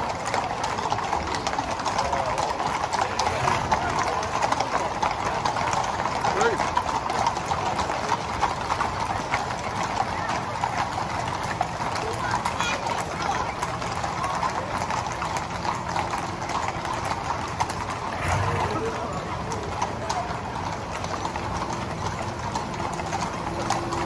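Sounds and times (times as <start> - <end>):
crowd chatter: 0.0 - 24.0
horse hooves on tarmac: 0.0 - 24.0.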